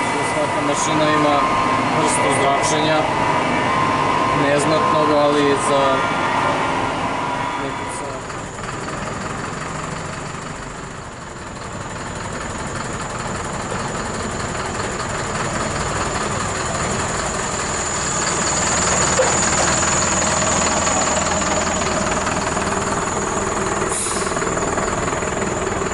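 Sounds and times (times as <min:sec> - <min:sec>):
high whine: 0:00.0 - 0:11.4, 0:12.0 - 0:25.9
engine idling: 0:00.0 - 0:25.9.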